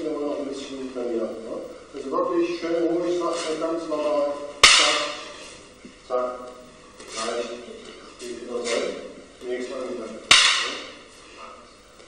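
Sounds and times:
wooden sticks striking: 4.4s - 5.5s, 10.3s - 11.1s.

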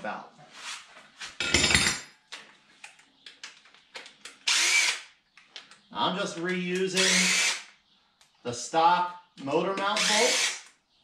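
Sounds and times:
cordless drill burst: 4.4s - 5.0s, 7.0s - 7.7s, 10.0s - 10.7s.

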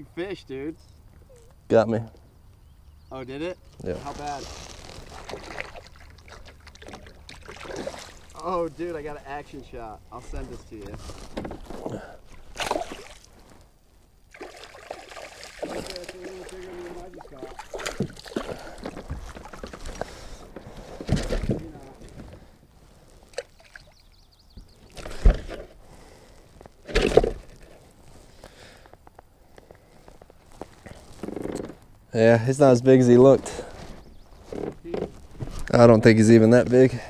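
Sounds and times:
water sloshing and splashing: 4.5s - 8.5s, 11.1s - 13.6s, 14.3s - 22.2s, 23.3s - 24.0s.

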